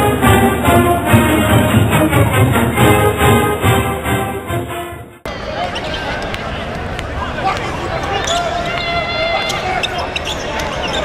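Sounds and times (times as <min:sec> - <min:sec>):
background music: 0:00.0 - 0:05.3
crowd chatter: 0:05.2 - 0:11.0
shoe squeaks: 0:07.8 - 0:11.0.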